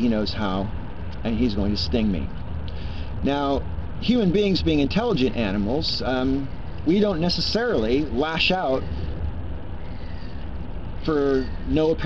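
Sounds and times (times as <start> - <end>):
faint hiss: 0.0 - 12.0
low background rumble: 0.0 - 12.0.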